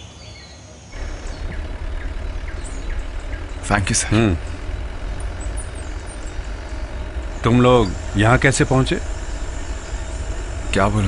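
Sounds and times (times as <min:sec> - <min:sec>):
birds chirping: 0:00.0 - 0:11.0
jeep engine running: 0:00.9 - 0:11.0.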